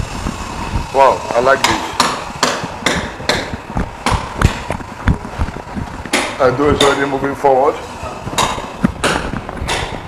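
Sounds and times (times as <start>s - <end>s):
hammer blows ringing: 1.5s - 4.7s, 6.1s - 7.5s.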